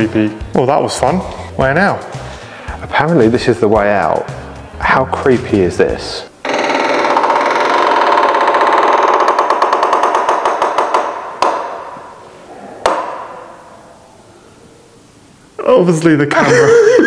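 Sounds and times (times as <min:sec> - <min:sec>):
sharp knocks: 0:06.4 - 0:12.2, 0:12.8 - 0:13.6
wooden door creaking: 0:06.4 - 0:13.7.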